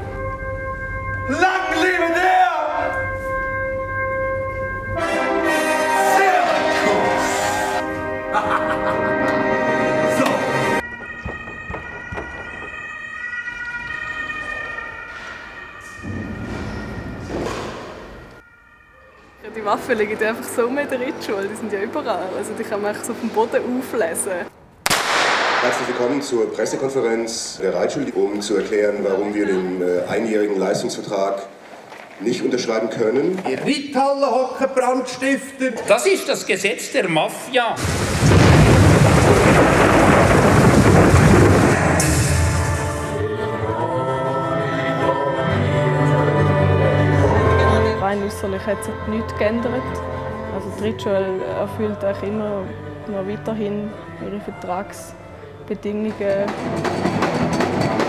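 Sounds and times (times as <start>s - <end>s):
siren high tones: 10.5s - 22.1s
deep rumble: 37.8s - 43.1s
loud rushing noise: 37.8s - 43.3s.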